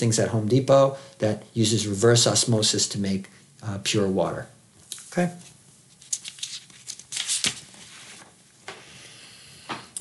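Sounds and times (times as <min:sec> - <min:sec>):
paper crinkling: 0:05.4 - 0:08.4
paper rustling and sliding: 0:05.9 - 0:08.4.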